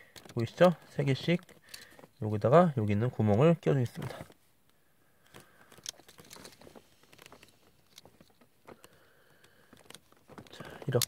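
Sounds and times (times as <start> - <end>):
plastic parts clicking together: 0.0 - 2.2, 5.2 - 11.0.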